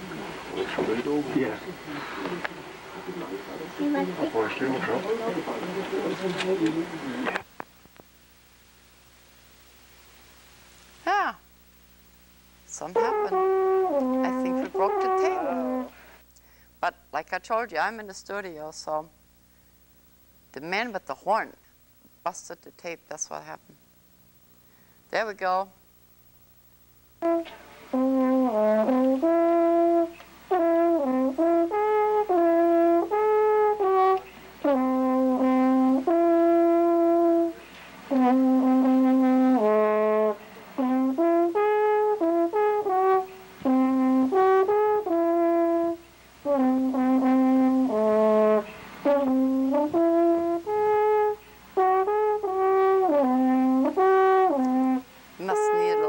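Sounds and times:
alphorn playing slow melody: 12.9 - 16.0, 27.2 - 56.0.

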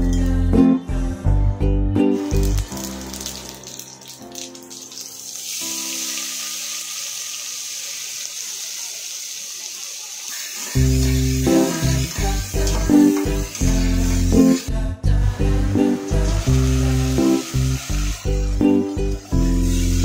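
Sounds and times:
background music: 0.0 - 7.8, 10.7 - 20.0
onions sizzling in hot oil: 2.2 - 14.7, 15.4 - 20.0.

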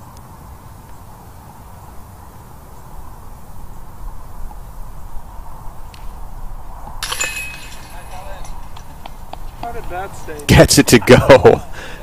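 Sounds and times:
disc hitting metal chains: 7.0 - 8.6.

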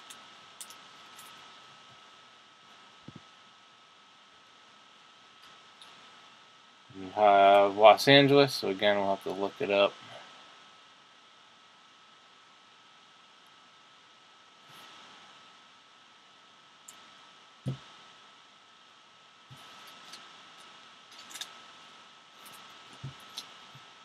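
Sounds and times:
steady low hiss: 0.0 - 24.0
soft thump: 17.7 - 17.9
trading cards rustling: 19.6 - 21.6.

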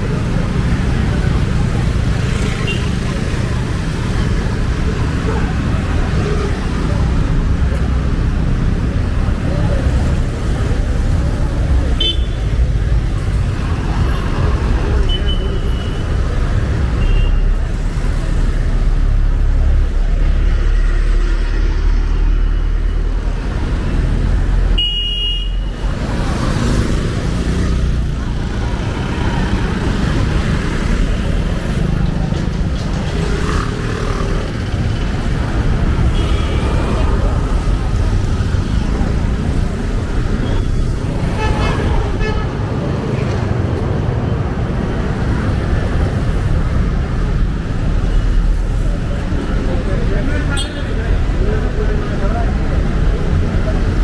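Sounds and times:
motorcycles and cars passing: 0.0 - 54.0.

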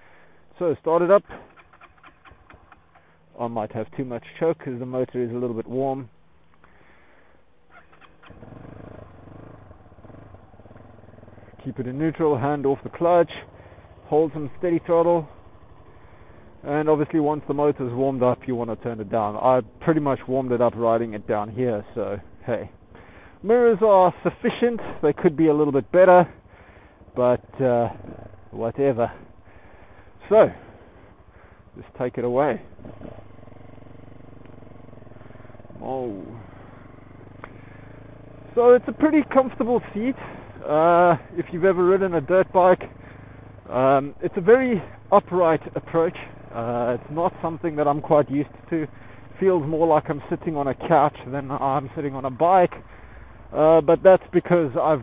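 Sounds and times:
single-cylinder engine running unevenly: 0.0 - 55.0.

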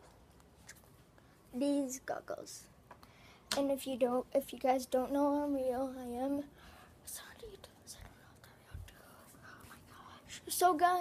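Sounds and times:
faint whispering: 6.2 - 10.7.

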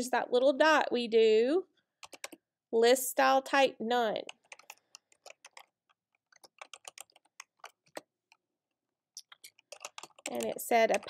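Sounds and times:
computer keyboard typing: 2.0 - 2.4, 4.3 - 8.4, 9.2 - 11.0.

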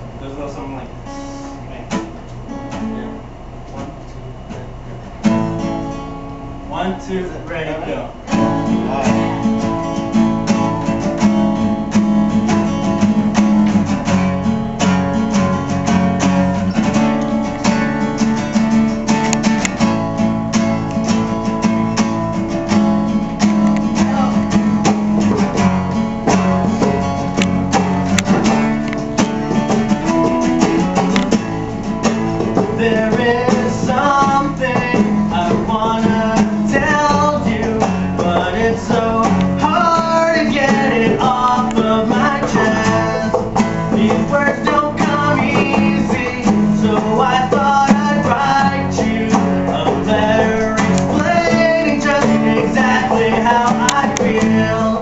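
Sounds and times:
acoustic guitars strummed: 0.0 - 55.0
man singing: 8.3 - 9.6, 23.9 - 24.6, 32.5 - 55.0.

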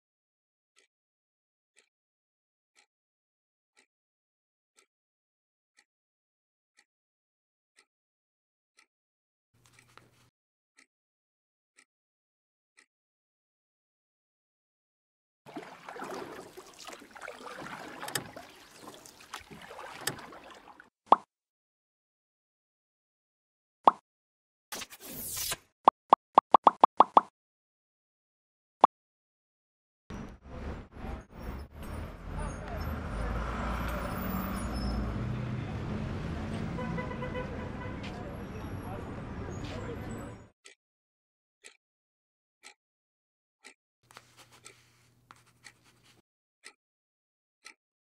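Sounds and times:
paddle splashing in water: 15.5 - 20.9
traffic: 30.1 - 40.5
car horn: 32.2 - 39.2
crowd voices: 35.6 - 40.5.

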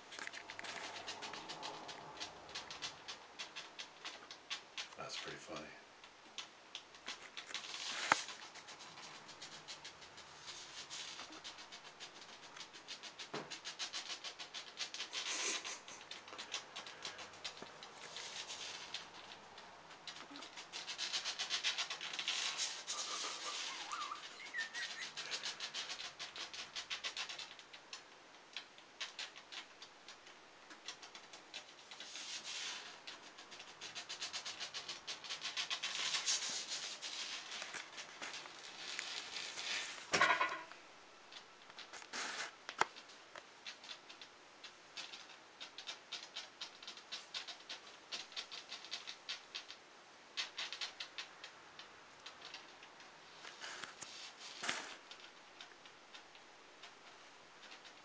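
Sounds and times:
lizard claws scrabbling on glass: 0.0 - 5.4, 6.3 - 56.4.

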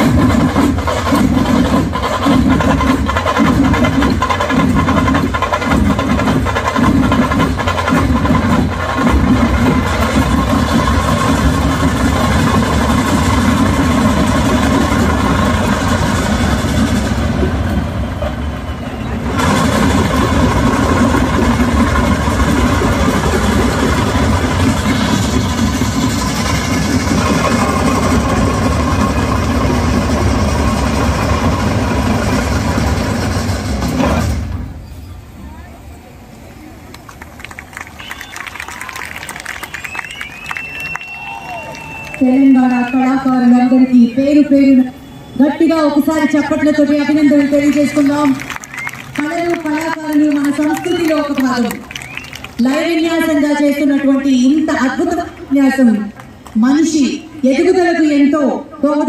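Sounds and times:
loud massed drumming: 0.0 - 34.7, 45.9 - 56.5.

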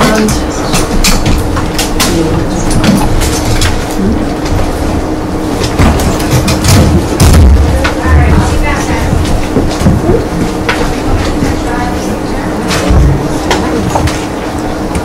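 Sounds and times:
low room hum: 0.0 - 15.0.

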